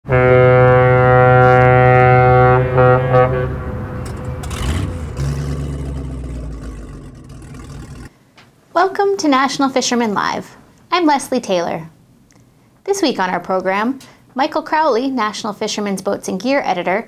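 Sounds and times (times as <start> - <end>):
loud low held tone: 0.1 - 7.8
low rumble: 2.7 - 8.1.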